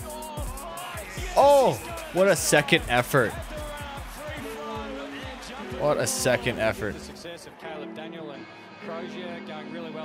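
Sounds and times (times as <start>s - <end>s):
background music with held notes: 0.0s - 10.0s
commentator talking: 1.1s - 8.0s.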